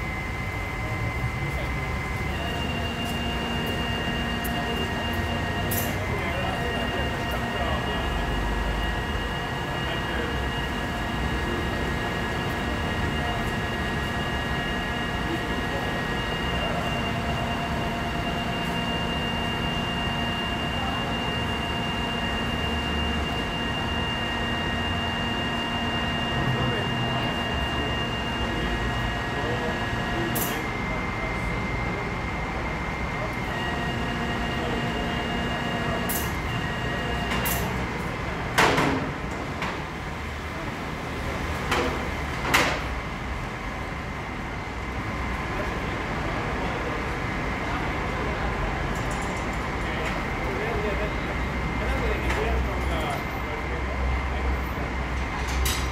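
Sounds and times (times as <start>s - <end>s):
hydraulic winch whining hum: 0.0s - 38.4s.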